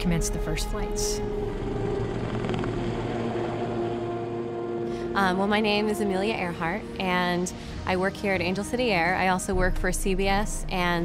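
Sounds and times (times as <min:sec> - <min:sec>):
helicopter rotor and engine: 0:00.0 - 0:09.0
background music: 0:00.0 - 0:11.0.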